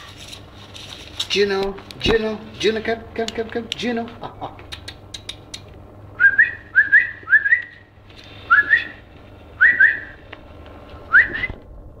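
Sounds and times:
person whistling: 6.2s - 7.8s, 8.5s - 9.0s, 9.6s - 10.2s, 11.1s - 11.6s.

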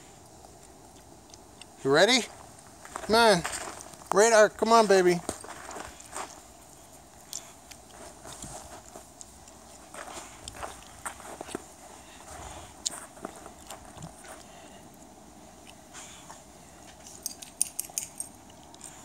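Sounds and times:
footsteps crunching on snow: 2.2s - 14.5s.

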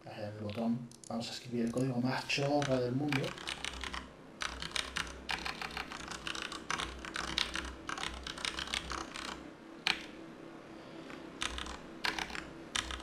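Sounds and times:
typing on a computer keyboard: 0.4s - 10.2s, 11.0s - 13.0s.

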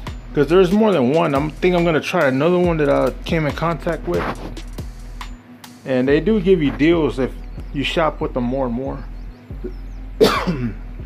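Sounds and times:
man coughing: 10.2s - 10.9s.

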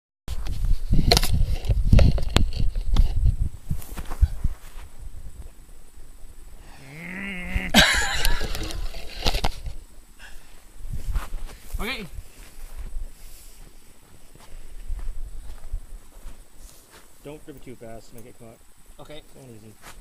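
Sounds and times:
rustling: 0.3s - 5.6s, 7.3s - 17.6s.

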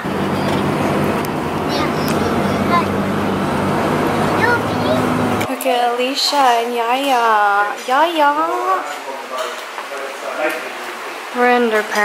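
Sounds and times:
low engine hum: 0.0s - 5.5s
road and wind noise: 0.0s - 5.6s.

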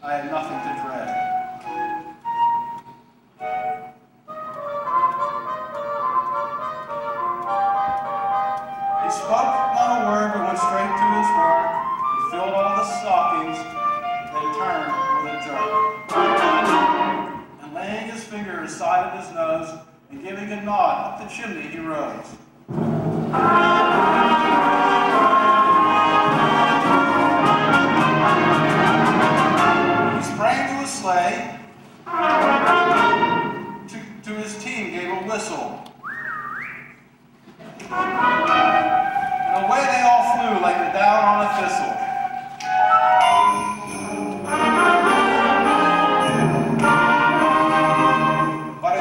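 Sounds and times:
concert band playing: 0.0s - 17.6s, 22.7s - 31.2s, 32.1s - 34.3s, 37.6s - 48.9s
french horns: 4.3s - 17.6s, 22.7s - 30.4s, 32.0s - 33.9s, 37.8s - 48.8s
sliding whistle tone: 36.0s - 37.1s.

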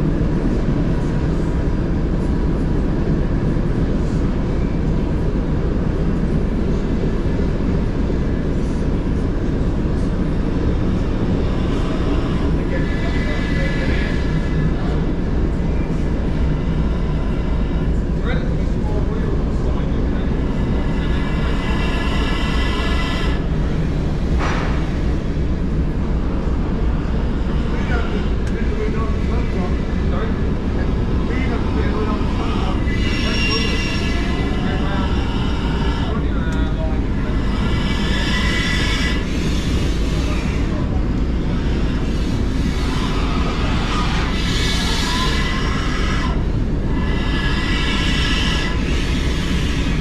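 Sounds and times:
train wheels rumbling on rails: 0.0s - 50.0s
high wheel squeal: 10.7s - 24.5s, 27.0s - 50.0s.

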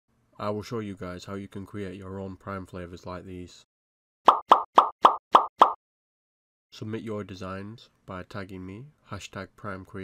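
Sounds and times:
pop sound effects: 4.2s - 5.8s.

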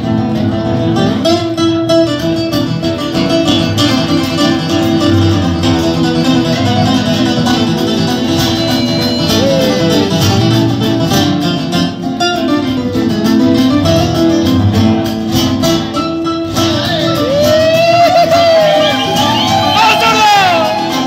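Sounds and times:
acoustic guitars plucking and strumming: 0.0s - 21.0s.

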